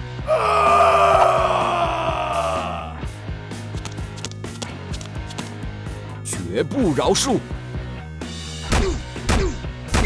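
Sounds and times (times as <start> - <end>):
background music with steady beat: 0.0 - 10.0
creature roar: 0.3 - 3.0.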